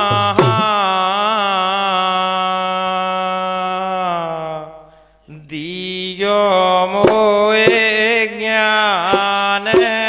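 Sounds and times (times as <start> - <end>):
man singing a folk song: 0.0 - 10.0.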